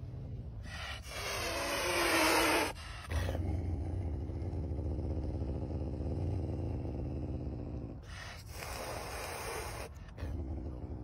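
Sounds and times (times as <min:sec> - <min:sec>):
caracal growling: 0:00.0 - 0:11.0.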